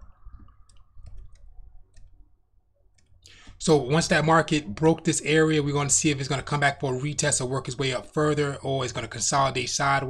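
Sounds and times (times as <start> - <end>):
computer mouse clicking: 0.3 - 2.2.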